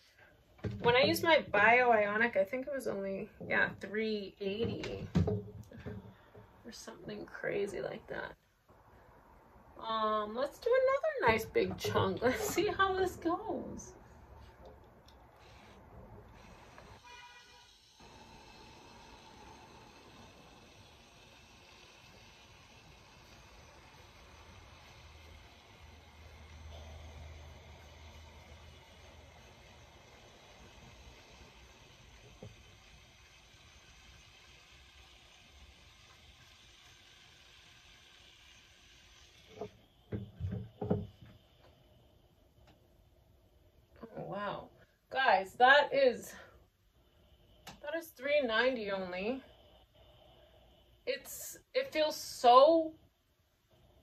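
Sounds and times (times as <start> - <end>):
steam flat iron hissing: 15.2 - 42.2, 47.5 - 52.9.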